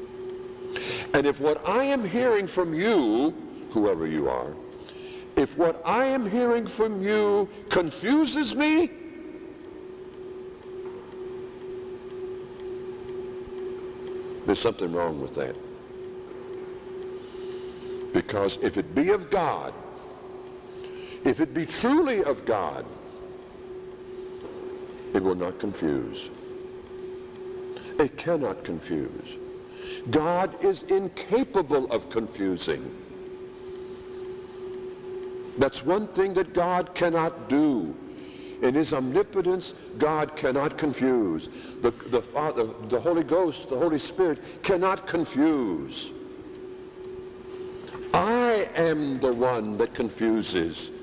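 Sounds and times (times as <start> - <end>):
steady hum: 0.0 - 51.0.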